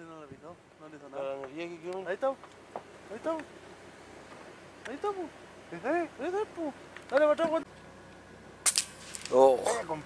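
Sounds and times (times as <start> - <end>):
sharp high-pitched click: 8.6 - 9.8.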